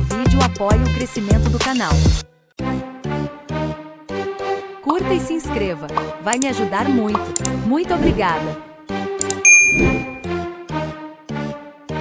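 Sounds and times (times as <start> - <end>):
upbeat background music: 3.1 - 12.0
bright bell ding: 9.5 - 10.4.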